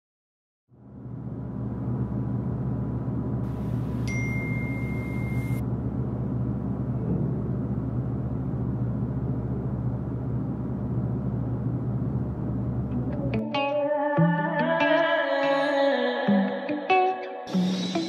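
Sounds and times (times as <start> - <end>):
faint high tone: 4.0 - 5.6.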